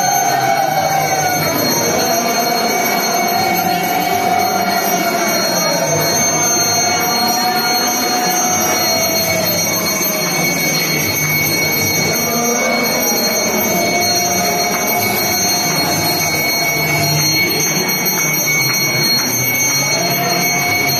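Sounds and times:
continuous high ringing: 0:00.0 - 0:20.9
dense crowd noise: 0:00.0 - 0:20.9.

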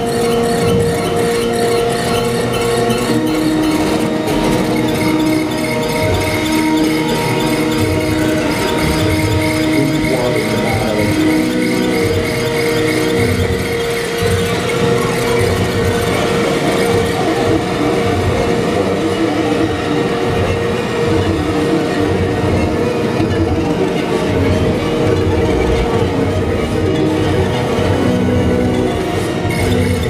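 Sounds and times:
experimental noise music: 0:00.0 - 0:30.0
squealing held tones: 0:00.0 - 0:30.0.

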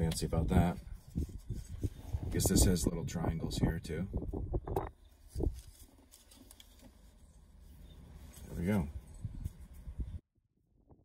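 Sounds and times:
low wind rumble: 0:00.0 - 0:05.8, 0:07.8 - 0:11.0
playing cards being fanned: 0:05.2 - 0:07.4.

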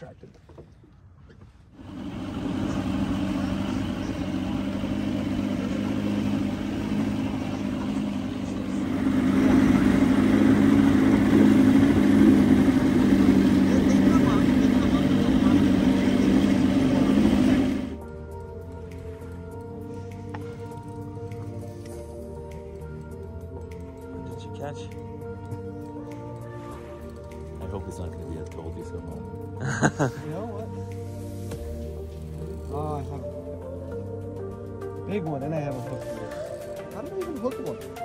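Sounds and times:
wind: 0:00.0 - 0:38.0
outboard motor running: 0:01.8 - 0:23.6, 0:25.2 - 0:38.0
music: 0:01.8 - 0:38.0.

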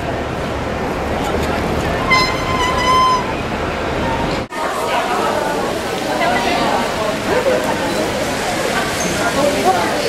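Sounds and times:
street traffic noise: 0:00.0 - 0:10.0
loud high-pitched squeal: 0:02.1 - 0:03.6.

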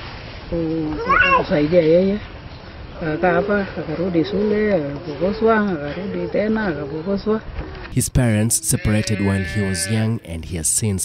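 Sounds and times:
older woman speaking: 0:03.0 - 0:07.4.

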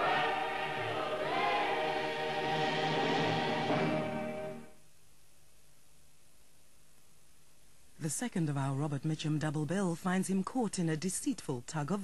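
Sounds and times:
choir singing with orchestra: 0:00.0 - 0:04.8.

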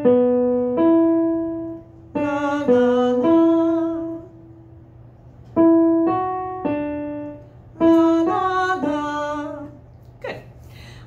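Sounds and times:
person singing la: 0:02.1 - 0:04.4, 0:07.8 - 0:09.8.

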